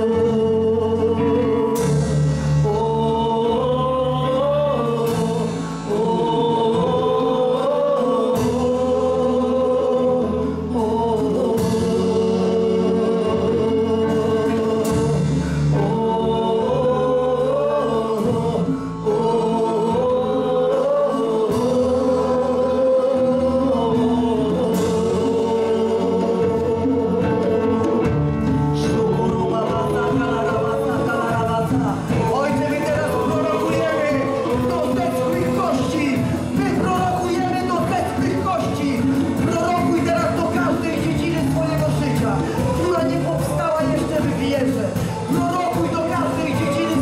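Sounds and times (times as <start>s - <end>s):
voices singing held notes: 0.0s - 47.0s
worship band playing slow song: 0.0s - 47.0s.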